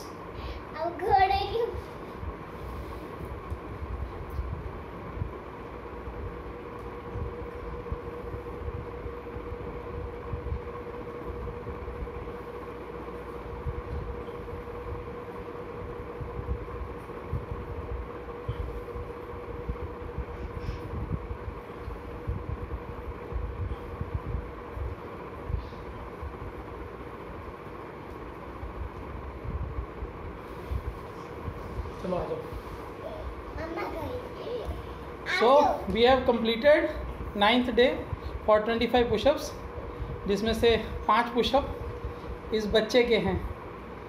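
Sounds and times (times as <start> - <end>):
steady low drone: 0.0 - 34.2
mechanical hum: 0.0 - 44.0
low rumbles near microphone: 0.8 - 44.0.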